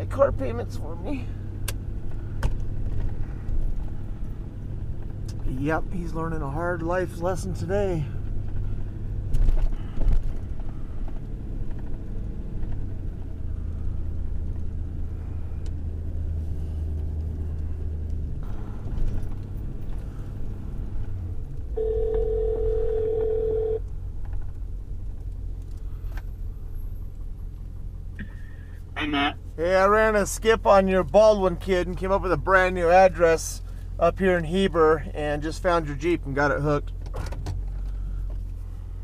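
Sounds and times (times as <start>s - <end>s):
truck engine and road rumble: 0.0s - 39.0s
telephone ringback tone: 21.8s - 23.8s.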